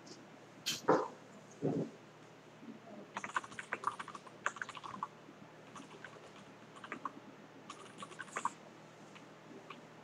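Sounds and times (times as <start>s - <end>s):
typing on computer keyboard: 3.2s - 5.1s, 5.7s - 7.1s, 7.7s - 8.5s.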